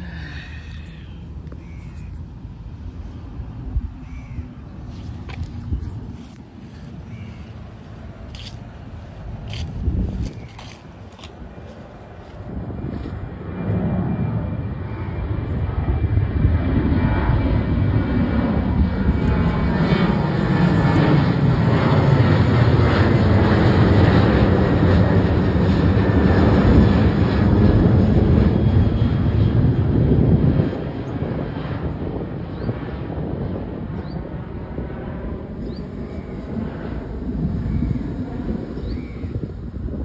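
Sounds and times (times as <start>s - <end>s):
jet airliner passing overhead: 0.0s - 40.0s.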